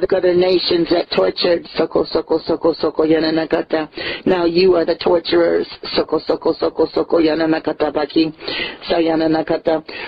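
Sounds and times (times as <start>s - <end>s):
person speaking in fast repeated syllables: 0.0s - 9.9s.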